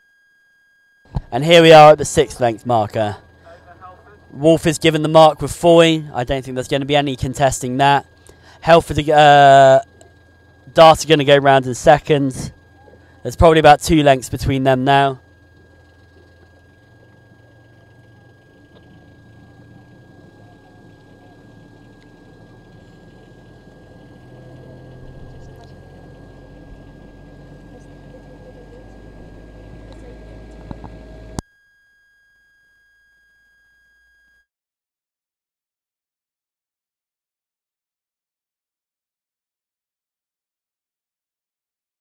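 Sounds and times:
thin steady whine: 0.0 - 34.5.

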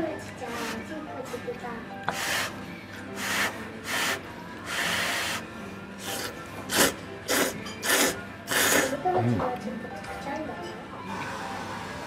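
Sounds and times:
person slurping noodles: 3.2 - 5.4, 6.0 - 9.0.

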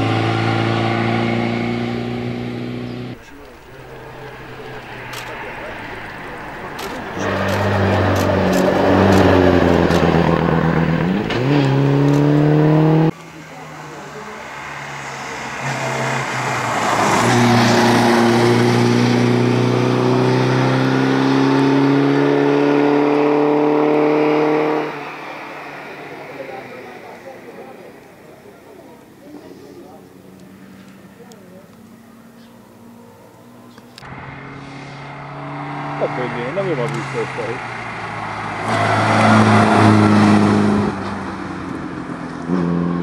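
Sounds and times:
racing car engine accelerating: 0.0 - 28.8, 29.7 - 43.0.

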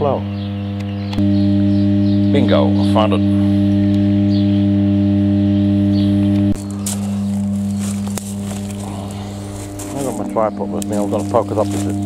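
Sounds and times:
transformer humming: 0.0 - 12.0.

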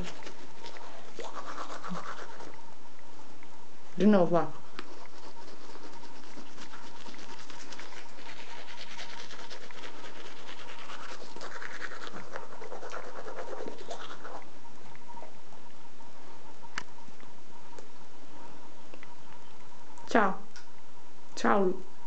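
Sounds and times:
toothbrush scrubbing teeth: 0.0 - 2.6, 4.6 - 14.5.

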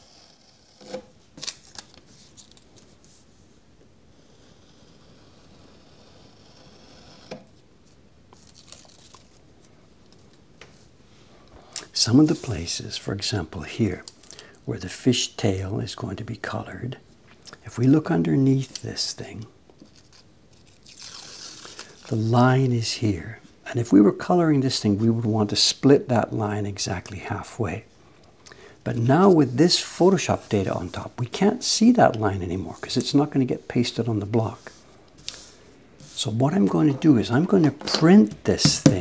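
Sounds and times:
soft hiss: 0.0 - 39.0
paper rustling: 1.4 - 3.3, 7.9 - 9.8.

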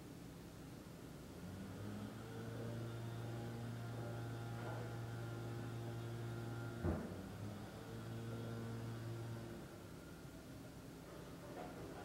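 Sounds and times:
low electrical hum: 0.0 - 12.0
brief thump: 6.8 - 7.2.

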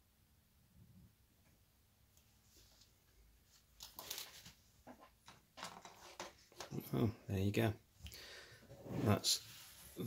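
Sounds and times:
wooden parts rustling and tapping: 3.8 - 7.0.

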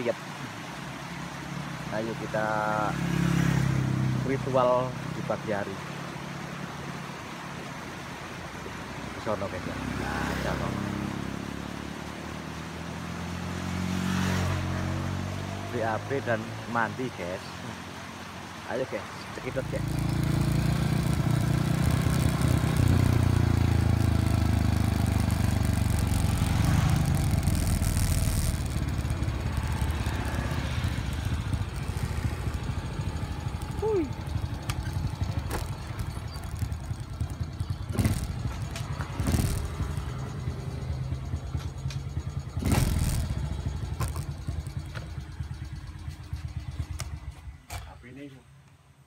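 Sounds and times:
motorcycle engine running: 19.5 - 48.0.

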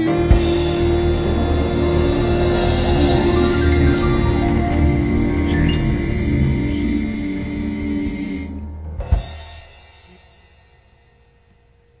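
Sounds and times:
soul band chord: 0.0 - 10.0.

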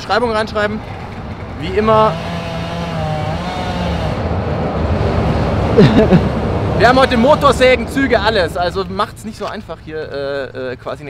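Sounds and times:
chainsaw engine at high revs: 1.2 - 4.4.

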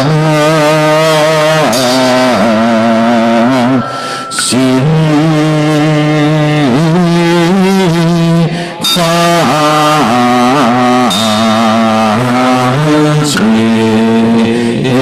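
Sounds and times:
slow melodic chanting voices: 0.0 - 15.0.

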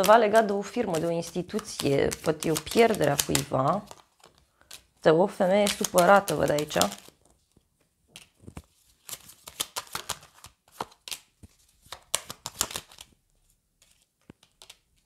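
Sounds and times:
cards shuffled and dealt: 0.0 - 13.1, 13.8 - 15.0.

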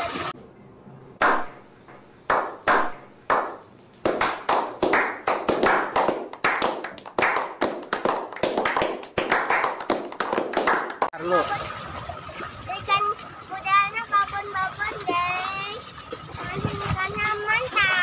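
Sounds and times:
group clapping: 2.3 - 11.2.

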